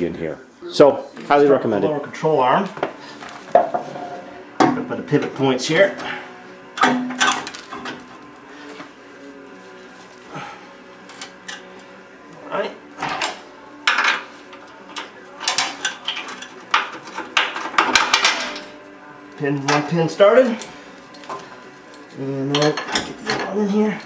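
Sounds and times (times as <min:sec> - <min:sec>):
metal clinks and knocks: 0:15.0 - 0:19.9, 0:20.5 - 0:23.6.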